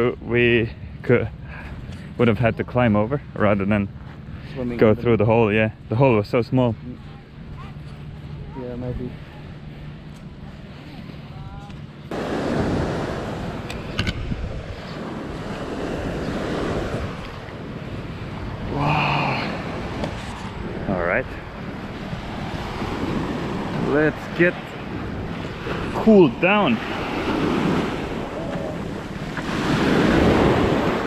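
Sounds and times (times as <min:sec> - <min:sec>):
wind buffeting microphone: 0:07.0 - 0:31.0
small waves washing onto beach: 0:08.9 - 0:31.0.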